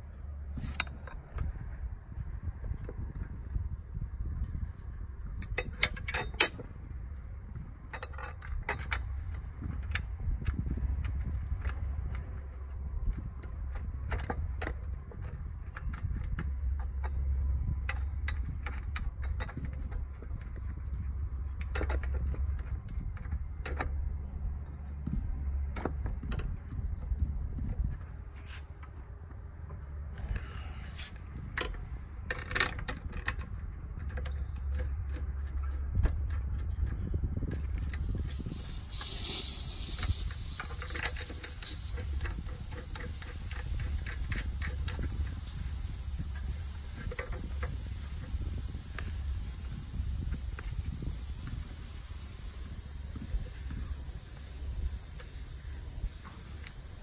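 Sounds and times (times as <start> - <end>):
steady low rumble: 0.0 - 57.0
wrench clicking and rattling: 38.0 - 57.0
hiss with thin high whine: 38.5 - 57.0.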